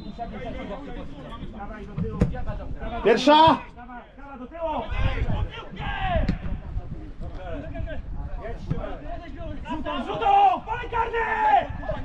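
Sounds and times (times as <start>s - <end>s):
men calling and shouting: 0.0s - 12.0s.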